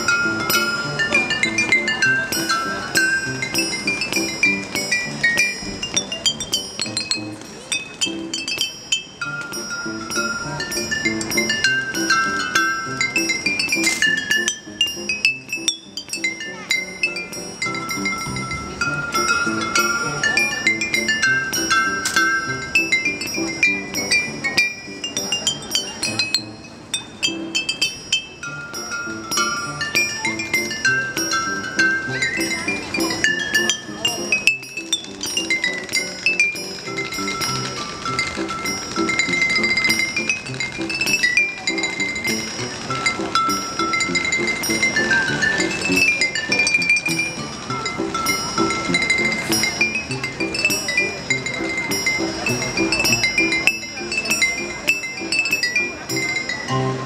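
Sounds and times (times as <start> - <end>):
glass bottle xylophone melody: 0.0 - 57.0.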